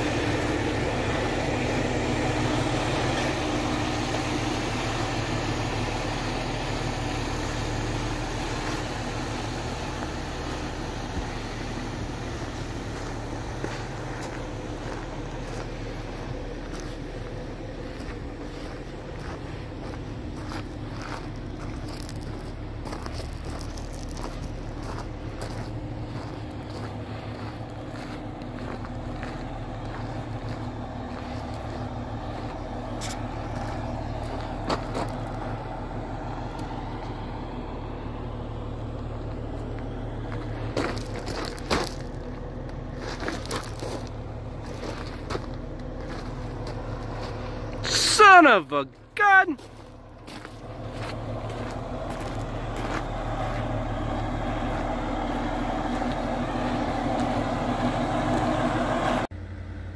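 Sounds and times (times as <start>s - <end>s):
footsteps crunching on gravel: 0.0s - 35.7s, 38.7s - 59.2s
diesel truck engine idling: 0.0s - 59.9s.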